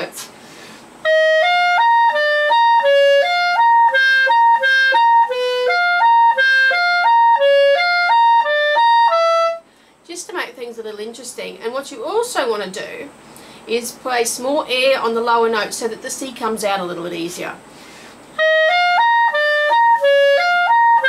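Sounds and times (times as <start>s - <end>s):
clarinet playing: 1.0s - 9.7s, 18.4s - 21.0s.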